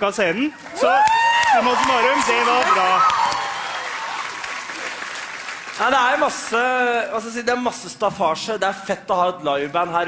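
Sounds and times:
audience applause: 0:00.5 - 0:07.0.

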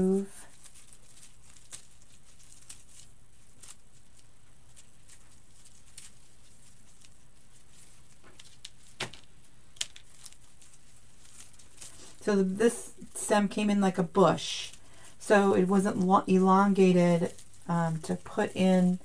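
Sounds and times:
artificial greenery rustling: 0:00.0 - 0:19.0.

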